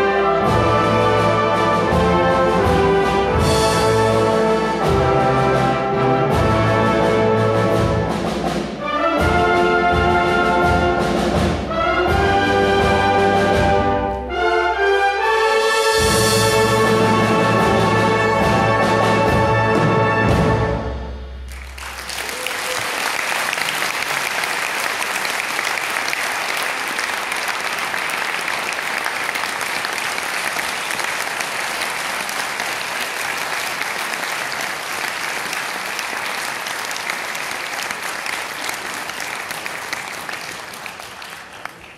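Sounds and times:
audience applauding: 0:21.5 - 0:41.9.

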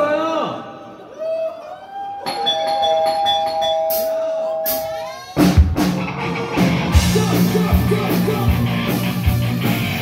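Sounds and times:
bell-like keyboard notes: 0:02.2 - 0:04.3.

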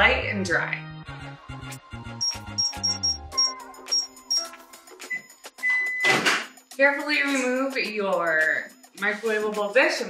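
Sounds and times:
background music: 0:00.0 - 0:10.0
microwave keypad beeps: 0:02.2 - 0:04.5, 0:05.1 - 0:06.2.

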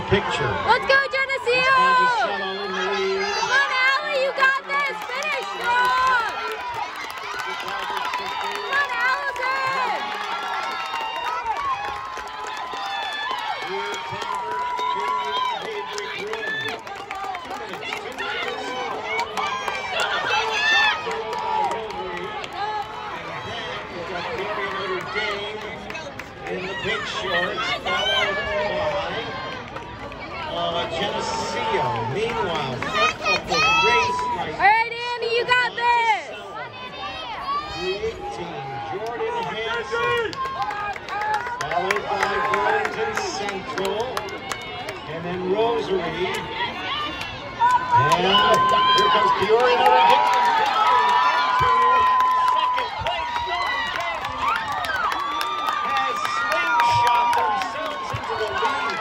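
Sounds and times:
crowd talking and calling out: 0:00.0 - 0:59.0.

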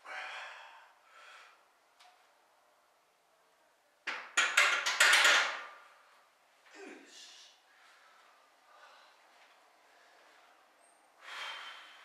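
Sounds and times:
weight bench and barbell clatter: 0:04.1 - 0:05.9.

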